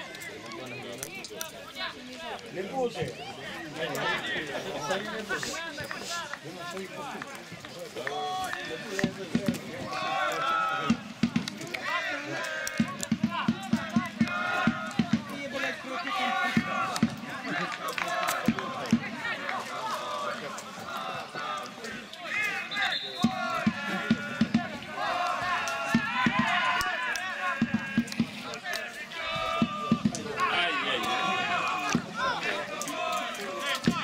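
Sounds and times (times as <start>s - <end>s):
voices calling out and talking: 0.0s - 34.0s.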